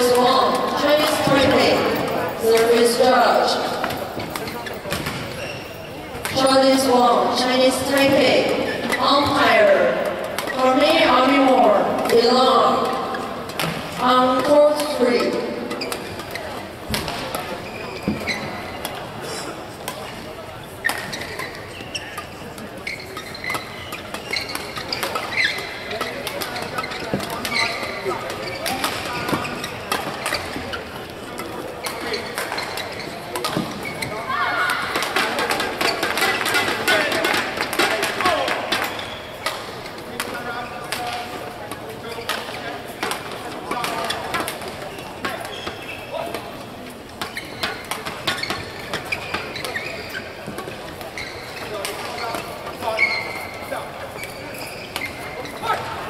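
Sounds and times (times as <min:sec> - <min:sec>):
echoing voices: 0:00.0 - 0:56.0
shoes squeaking on court: 0:00.0 - 0:56.0.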